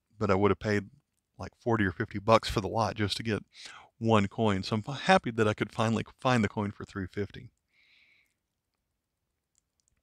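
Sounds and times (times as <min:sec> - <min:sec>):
faint small clicks: 0:01.0 - 0:01.4, 0:07.5 - 0:10.0.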